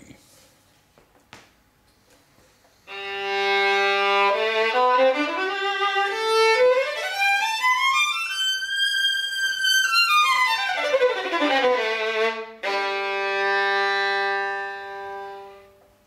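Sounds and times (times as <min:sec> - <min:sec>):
solo violin bowed: 0:02.9 - 0:15.8.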